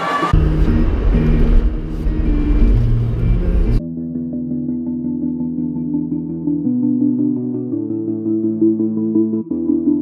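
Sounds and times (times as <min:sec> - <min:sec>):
soft synth music: 0:00.0 - 0:10.0
music with heavy deep bass: 0:00.3 - 0:10.0.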